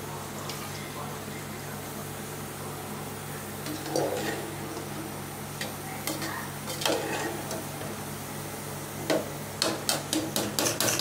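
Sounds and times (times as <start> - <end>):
ladle scraping metal pot: 3.7 - 4.6, 6.7 - 7.6.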